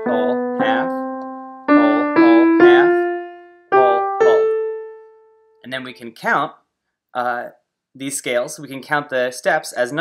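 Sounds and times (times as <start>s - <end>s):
piano playing ascending scale: 0.0s - 5.6s.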